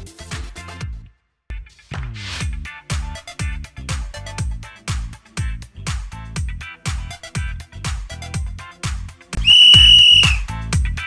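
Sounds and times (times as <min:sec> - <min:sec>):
loud whistle note: 0:09.4 - 0:10.5.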